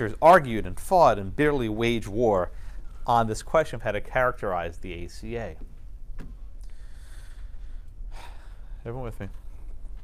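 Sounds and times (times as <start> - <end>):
man speaking: 0.0 - 5.6, 8.8 - 9.4
low room hum: 0.0 - 10.0
man breathing in: 6.6 - 8.8.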